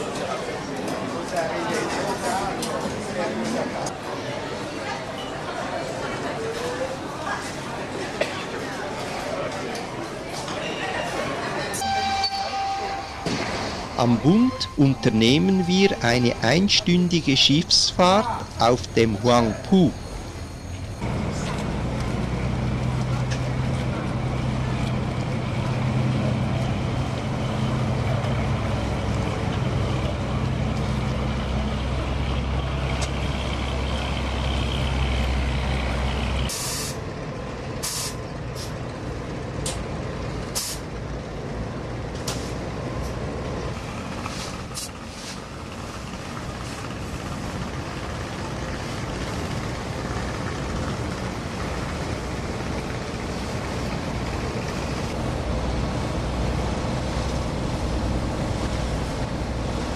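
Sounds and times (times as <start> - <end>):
wind: 0.0 - 59.9
boat engine droning: 11.8 - 36.5, 45.5 - 59.9.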